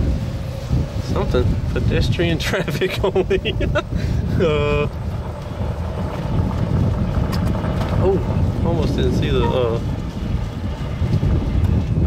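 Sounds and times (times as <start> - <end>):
golf cart low rumble: 0.0 - 12.0
wind buffeting microphone: 0.0 - 12.0.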